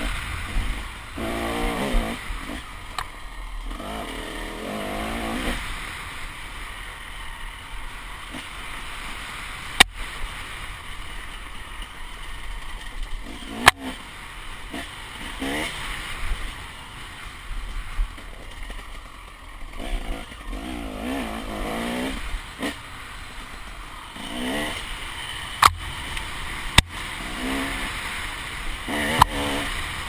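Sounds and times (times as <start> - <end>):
motorcycle engine revving: 0.0 - 30.0.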